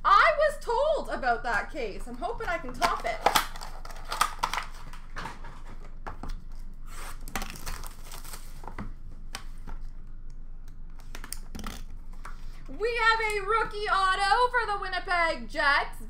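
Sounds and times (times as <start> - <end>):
cardboard tearing: 2.8 - 6.0, 6.8 - 8.7.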